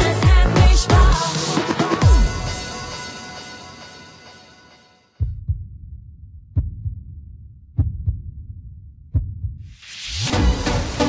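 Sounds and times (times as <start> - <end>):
electronic dance music: 0.0 - 4.4
heartbeat thumps: 5.2 - 9.7
low rumble: 5.2 - 10.4.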